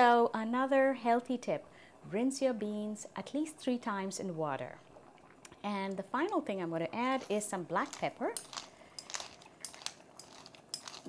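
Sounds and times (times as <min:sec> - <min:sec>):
pepper mill grinding: 0:07.0 - 0:11.0.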